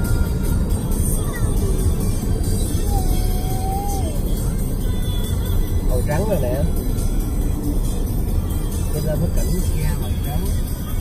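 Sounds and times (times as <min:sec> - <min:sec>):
faint music: 0:00.0 - 0:11.0
vehicle road noise rumble: 0:00.0 - 0:11.0.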